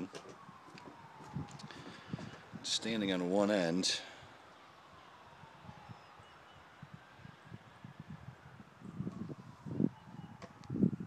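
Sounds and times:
footsteps on wooden deck: 0.1s - 2.4s.

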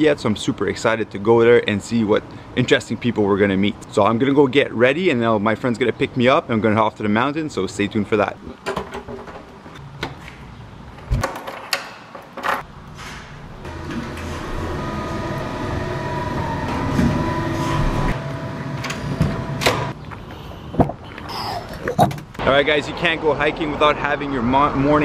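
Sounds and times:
elevator humming: 13.6s - 20.0s.

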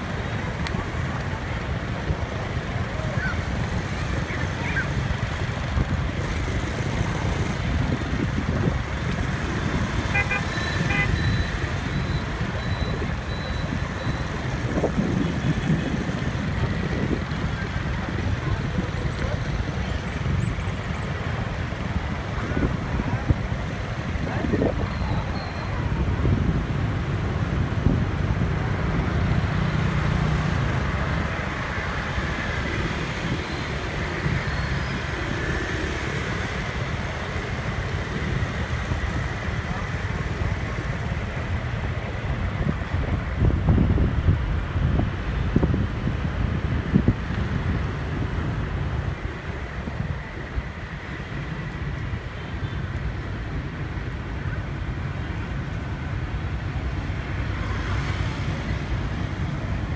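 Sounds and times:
motorbike engines rumbling: 0.0s - 59.9s
wind on microphone: 3.3s - 29.5s, 40.6s - 52.3s
short horn beeps: 10.1s - 14.3s.

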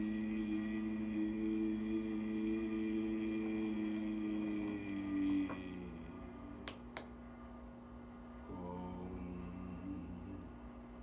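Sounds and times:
low musical drone: 0.0s - 6.7s.

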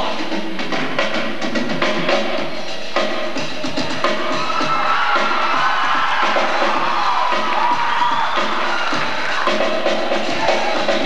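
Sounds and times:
rap drum beat: 0.0s - 11.0s
audience cheering and whooping: 3.9s - 11.0s.

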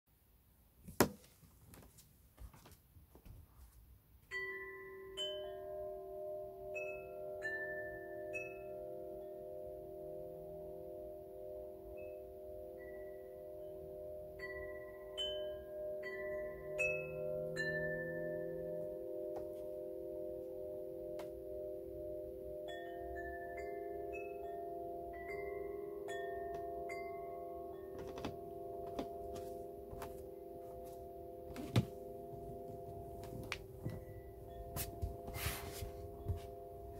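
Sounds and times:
metal chimes ringing: 21.0s - 36.9s.

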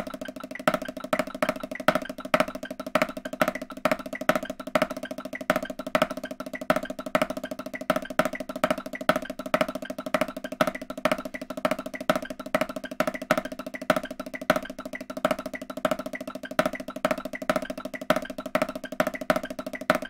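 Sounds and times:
accented snare strokes: 0.0s - 20.0s.

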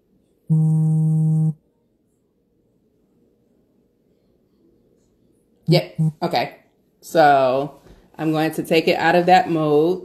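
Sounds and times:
loud buzzy low tone: 0.5s - 1.6s.

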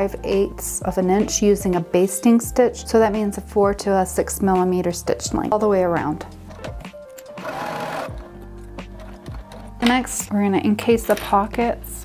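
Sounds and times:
background music: 0.0s - 12.0s
sewing machine running: 7.4s - 8.3s.

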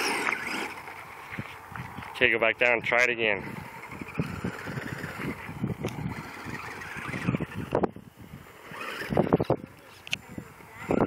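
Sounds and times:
electric motor whine: 0.0s - 1.2s, 3.5s - 11.0s
tyres crunching on gravel: 0.0s - 3.1s.

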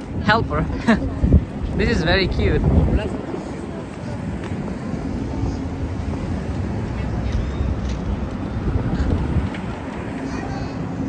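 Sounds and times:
pedestrians talking: 0.0s - 11.0s
traffic rumble: 0.0s - 11.0s.

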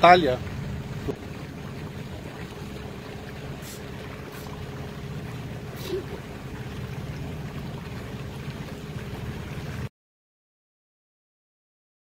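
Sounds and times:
boat motor humming: 0.0s - 9.9s
water rushing: 0.0s - 9.9s
wind: 0.0s - 9.9s.

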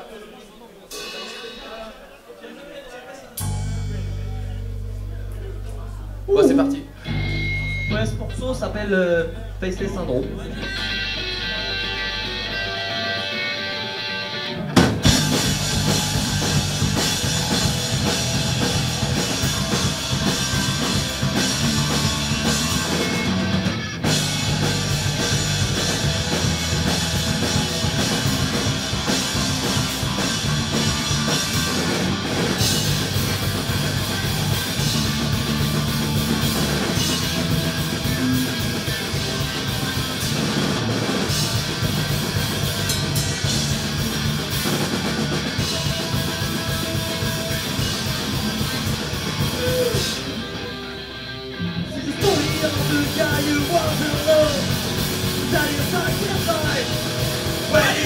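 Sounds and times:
drums: 0.0s - 58.0s
punk rock band playing: 0.9s - 1.8s, 3.4s - 58.0s
electric guitar: 3.4s - 58.0s.

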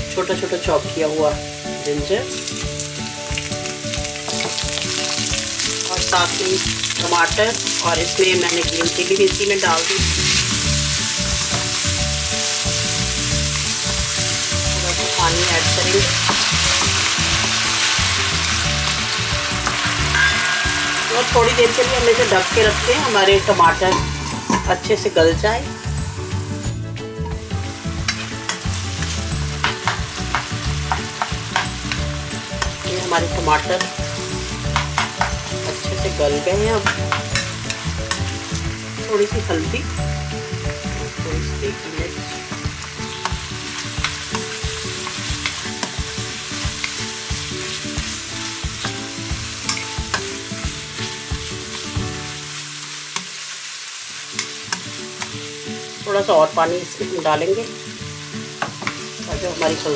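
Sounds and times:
masala sizzling in oil: 0.0s - 59.9s
spatula scraping and knocking pan: 28.0s - 32.8s.

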